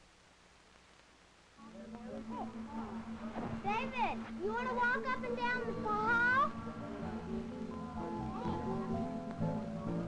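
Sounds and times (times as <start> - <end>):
soft background music: 1.6 - 10.0
child's high-pitched voice: 3.6 - 6.6, 7.9 - 9.1.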